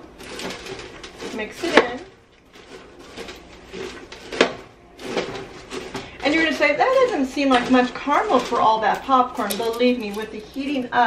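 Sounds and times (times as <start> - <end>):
spoon stirring popcorn in pan: 0.0 - 11.0.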